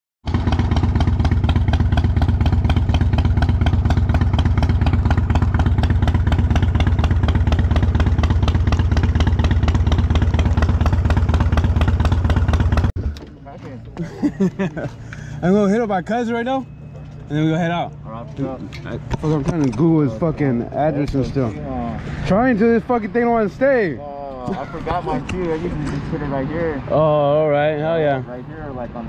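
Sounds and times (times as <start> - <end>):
motorcycle engine idling: 0.3 - 13.3.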